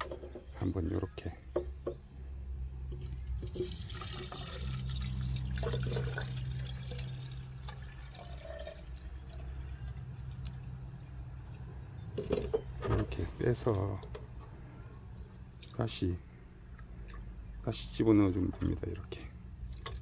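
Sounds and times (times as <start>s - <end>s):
liquid pouring into cup: 3.0s - 10.5s, 19.7s - 20.0s.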